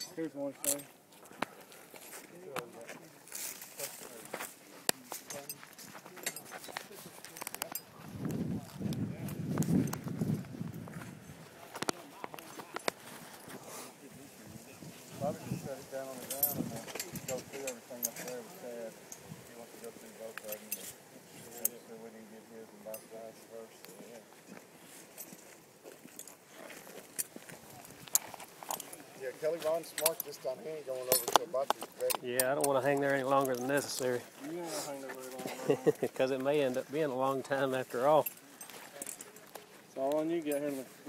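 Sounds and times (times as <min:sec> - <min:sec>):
distant people talking: 0:11.0 - 0:24.8.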